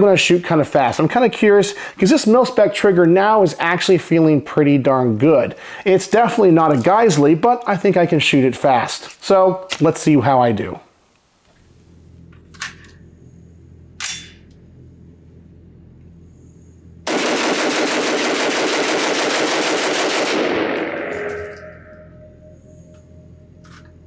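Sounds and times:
rapid gunshots echoing indoors: 17.1 - 21.3.

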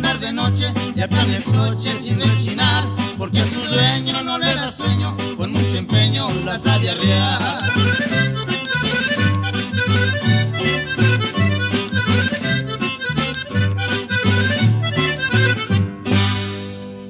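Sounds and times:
accordion dance music: 0.0 - 17.0.

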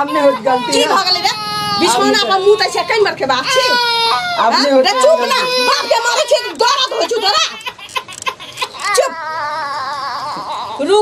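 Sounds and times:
baby crying: 0.0 - 11.0.

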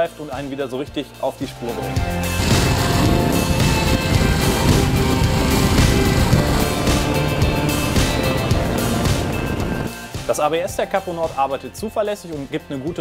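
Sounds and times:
background music: 0.0 - 13.0
motorcycle engine running: 2.0 - 9.9.

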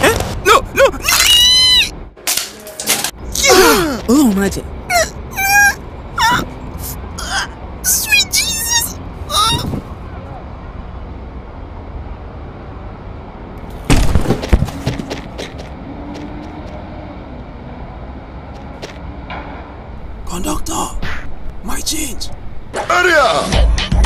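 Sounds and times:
high-pitched voice sounds: 4.9 - 9.8.

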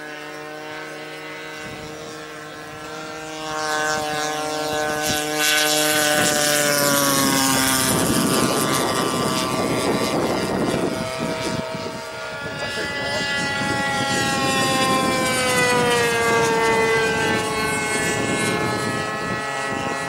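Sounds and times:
model airplane engine buzzing: 0.0 - 20.0
model airplane rushing past: 0.0 - 20.0.

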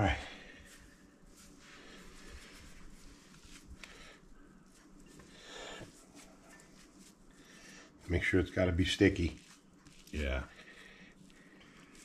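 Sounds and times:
soft rustle: 0.0 - 12.0
hands packing sticky rice: 0.5 - 12.0.

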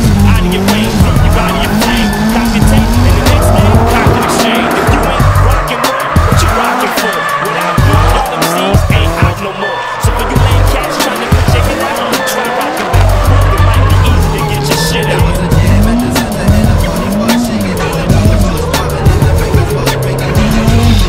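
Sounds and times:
car engine revving hard: 0.0 - 21.0
music: 0.0 - 21.0
tyres squealing: 0.2 - 21.0.

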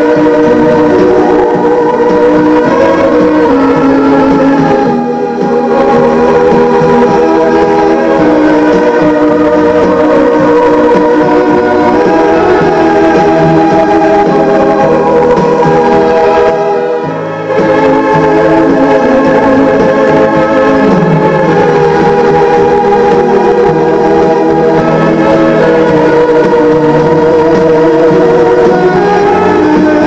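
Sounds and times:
music from cassette boombox: 0.0 - 30.0.

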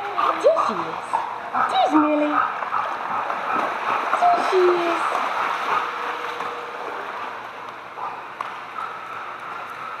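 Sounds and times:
pool water sloshing and gurgling: 0.0 - 10.0.

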